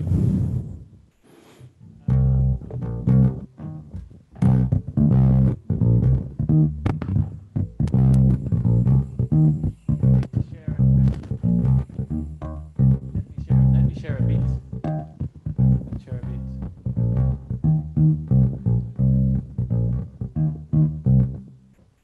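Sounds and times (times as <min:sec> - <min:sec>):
bass guitar plucked notes: 0:01.8 - 0:21.8.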